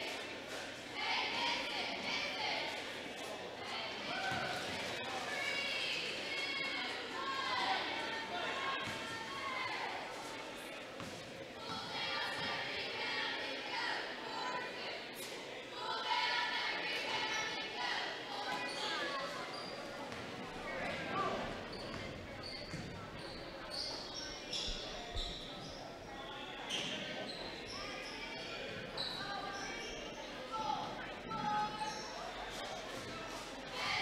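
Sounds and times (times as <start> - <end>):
shoes squeaking: 20.8 - 26.0, 26.7 - 28.2.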